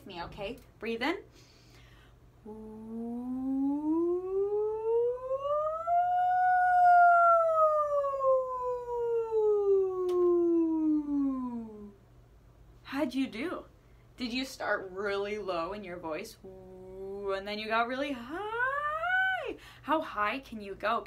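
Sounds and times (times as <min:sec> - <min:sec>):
woman singing sliding ooh: 0:02.4 - 0:12.0.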